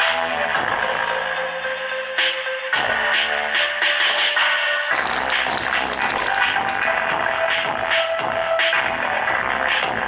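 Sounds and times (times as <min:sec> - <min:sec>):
electronic dance music: 0:04.0 - 0:07.1
bass beat: 0:04.0 - 0:10.0.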